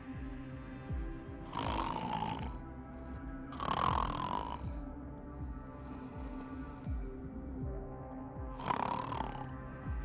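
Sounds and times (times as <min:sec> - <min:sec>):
background music: 0:00.0 - 0:10.0
woman snoring through nose: 0:01.4 - 0:02.6, 0:03.5 - 0:04.9, 0:08.6 - 0:09.5.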